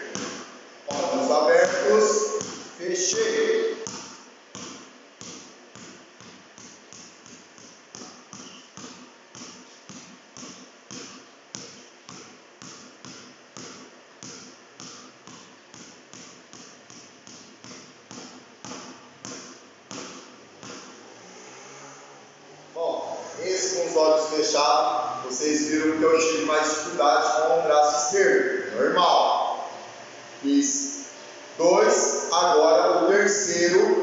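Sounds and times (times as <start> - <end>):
basketball bouncing on concrete: 0.0 - 21.1.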